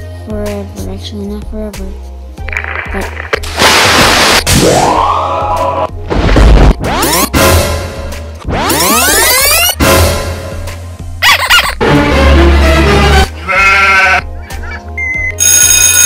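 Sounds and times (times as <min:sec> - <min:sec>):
sheep bleating: 0:13.2 - 0:14.3.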